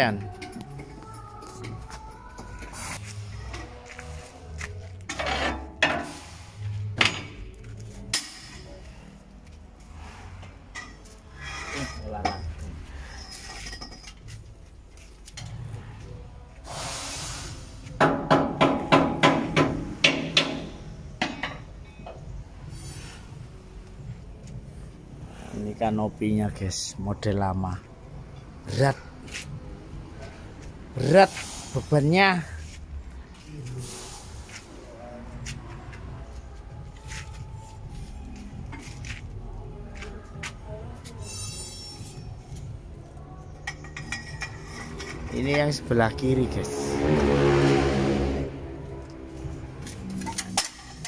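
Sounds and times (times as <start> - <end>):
short hiss: 16.7 - 17.8, 31.3 - 31.9.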